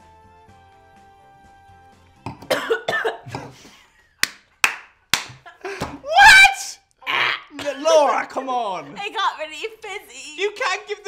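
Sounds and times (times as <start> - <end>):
person coughing and spluttering: 2.4 - 3.6.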